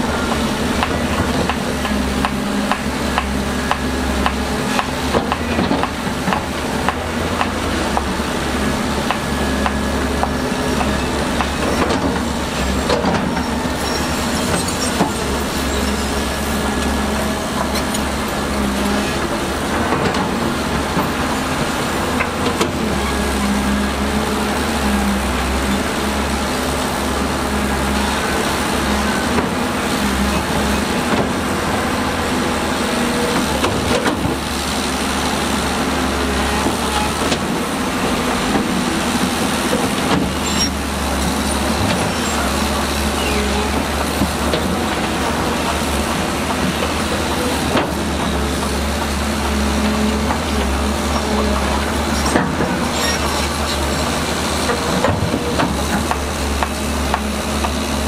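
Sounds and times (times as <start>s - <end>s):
excavator diesel engine droning: 0.0s - 58.0s.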